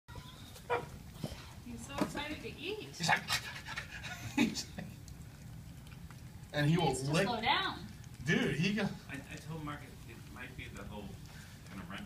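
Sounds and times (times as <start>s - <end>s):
puppy chewing and lapping: 0.1s - 12.0s.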